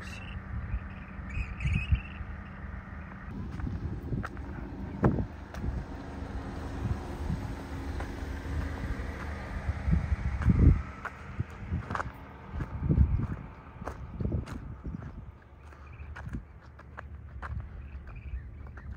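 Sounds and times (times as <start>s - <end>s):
wind buffeting microphone: 0.0s - 18.9s
footsteps on dirt track: 3.1s - 18.9s.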